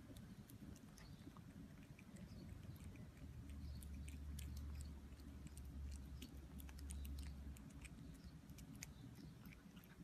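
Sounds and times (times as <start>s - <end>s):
cat chewing: 0.0s - 10.0s.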